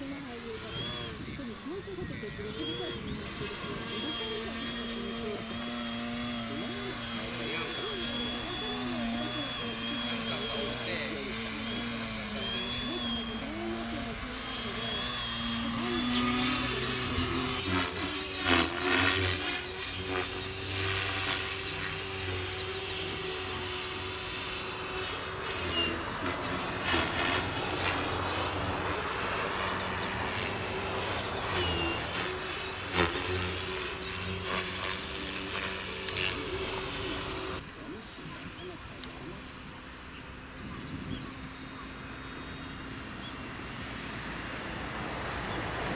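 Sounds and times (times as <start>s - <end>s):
people's voices: 0.0s - 17.6s
model airplane motor whine: 0.0s - 45.9s.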